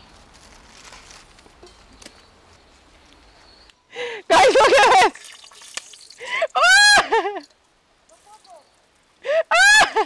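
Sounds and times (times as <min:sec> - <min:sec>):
burning sticks clicking and crackling: 0:05.2 - 0:06.2.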